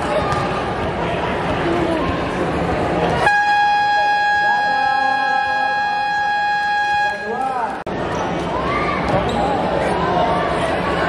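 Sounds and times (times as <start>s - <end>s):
voices in hall: 0.0s - 11.0s
game buzzer steady tone: 3.3s - 7.4s.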